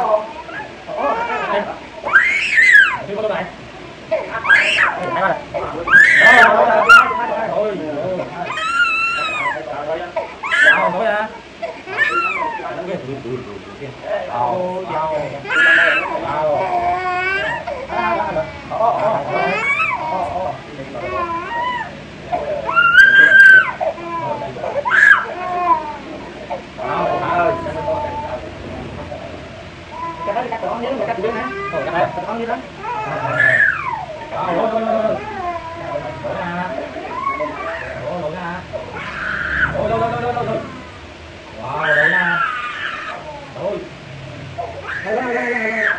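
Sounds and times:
toddler crying and wailing: 0:00.0 - 0:03.1, 0:04.1 - 0:07.6, 0:08.4 - 0:12.9, 0:15.0 - 0:28.5, 0:29.9 - 0:39.8, 0:41.8 - 0:43.6, 0:44.6 - 0:45.9
small child screaming and crying: 0:00.5 - 0:03.0, 0:04.4 - 0:07.4, 0:08.4 - 0:09.6, 0:10.4 - 0:11.0, 0:11.9 - 0:12.8, 0:15.4 - 0:17.7, 0:22.6 - 0:26.0, 0:32.8 - 0:34.2, 0:38.9 - 0:39.8, 0:41.8 - 0:43.6.

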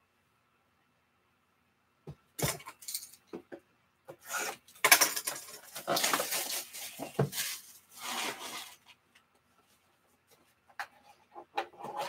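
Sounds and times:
plastic wrap crinkling and tearing: 0:05.6 - 0:08.8.

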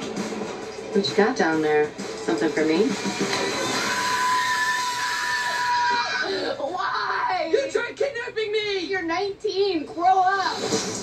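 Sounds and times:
young man screaming: 0:03.7 - 0:07.5.

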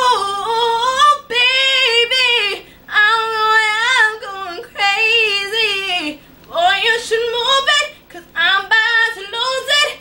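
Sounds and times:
woman singing a cappella: 0:00.0 - 0:10.0.

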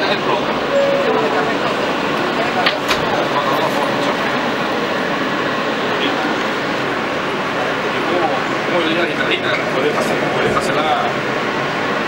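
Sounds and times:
passengers chatting: 0:00.0 - 0:12.0
subway car running noise: 0:00.0 - 0:12.0.

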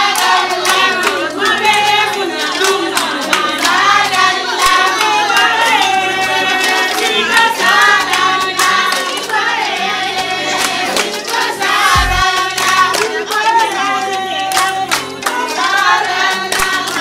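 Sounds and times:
hand clapping: 0:00.0 - 0:17.0
women singing in chorus: 0:00.0 - 0:17.0
low thump: 0:12.0 - 0:12.2.

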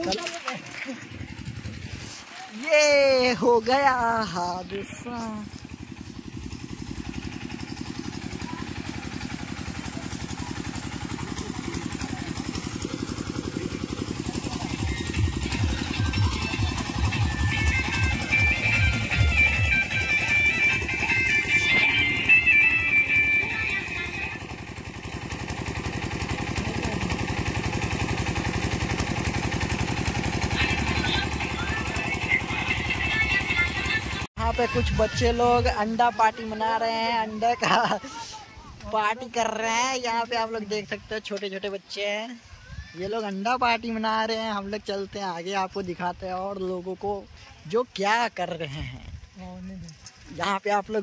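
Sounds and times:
voices: 0:00.0 - 0:24.8, 0:25.7 - 0:51.0
portable generator engine chugging: 0:00.0 - 0:51.0
music: 0:14.9 - 0:24.6.

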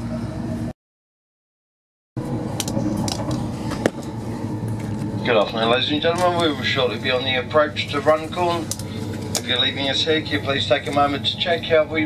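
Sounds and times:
train carriage running noise: 0:00.0 - 0:00.7, 0:02.2 - 0:12.0.

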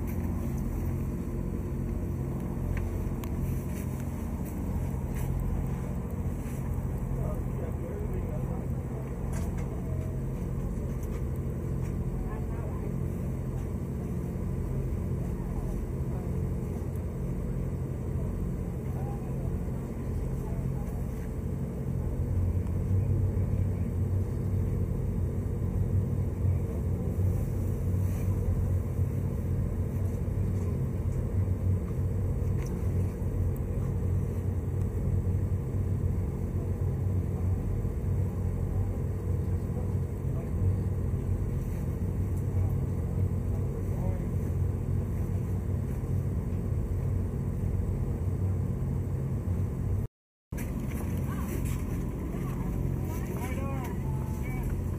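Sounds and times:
low machinery drone: 0:00.0 - 0:54.9.

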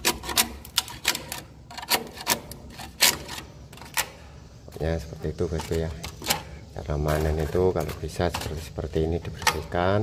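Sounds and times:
metal scraper scraping wood: 0:00.0 - 0:09.8.

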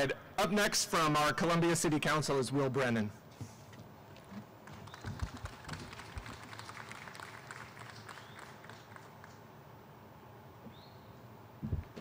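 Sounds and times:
audience clapping: 0:04.6 - 0:09.6.

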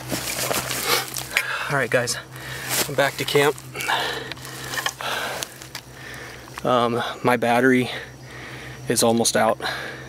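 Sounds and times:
camera handling rustling and knocking: 0:00.0 - 0:01.4, 0:03.6 - 0:05.9.

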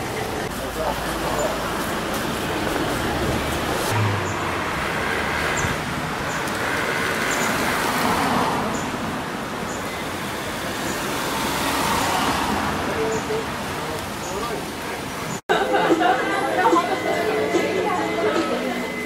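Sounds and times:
passing road traffic: 0:00.0 - 0:19.0.

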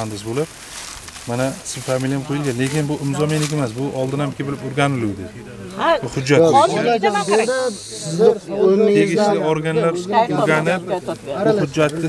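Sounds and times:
men talking: 0:00.0 - 0:00.5, 0:01.2 - 0:12.0
high hiss: 0:06.6 - 0:12.0.

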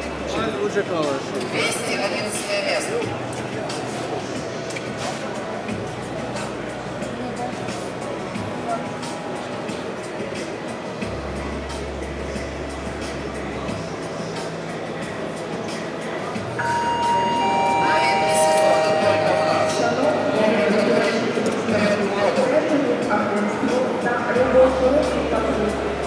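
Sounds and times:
murmur of crowd chatter: 0:00.0 - 0:26.0.

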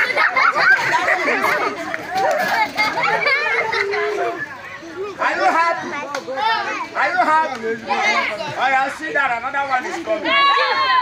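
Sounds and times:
children shouting while playing: 0:00.0 - 0:09.0, 0:10.1 - 0:11.0.

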